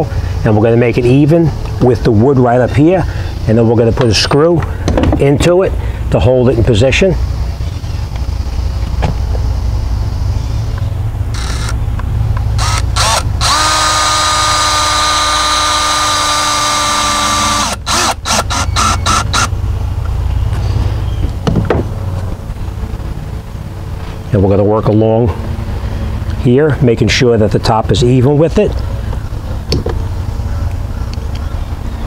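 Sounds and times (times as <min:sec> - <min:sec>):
cordless drill driving a screw: 0:11.3 - 0:11.8, 0:12.6 - 0:19.5
drill clutch clicks: 0:11.3 - 0:11.8, 0:12.4 - 0:19.5.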